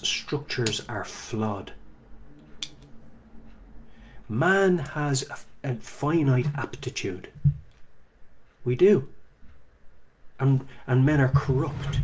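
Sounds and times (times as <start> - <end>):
faint steady low hum: 0.0 - 12.0.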